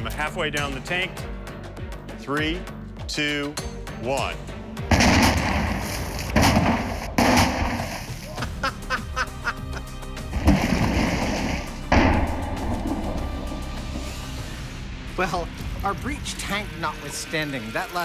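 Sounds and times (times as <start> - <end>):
background music: 0.0 - 18.0
underwater explosive bang: 4.9 - 8.2, 10.3 - 14.6
water splashing and sloshing: 4.9 - 18.0.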